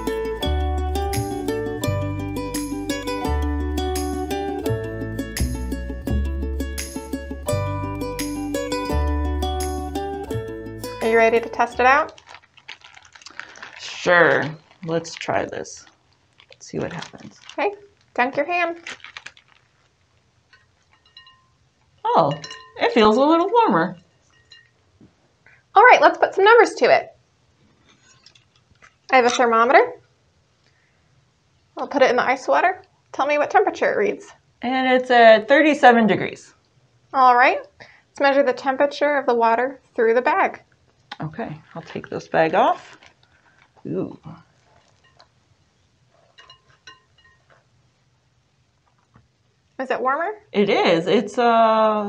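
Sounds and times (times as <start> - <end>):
faint glass clink: 21.0 - 21.6, 22.2 - 22.8, 24.2 - 24.8, 46.3 - 47.6.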